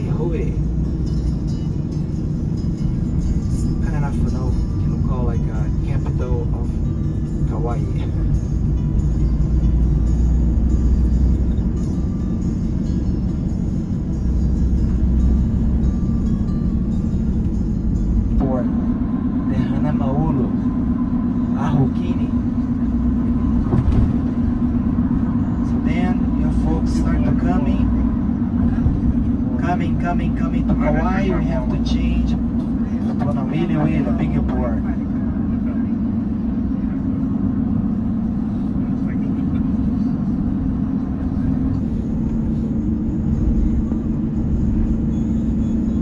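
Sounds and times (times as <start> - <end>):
road and engine rumble: 0.0 - 46.0
steady hum: 0.0 - 46.0.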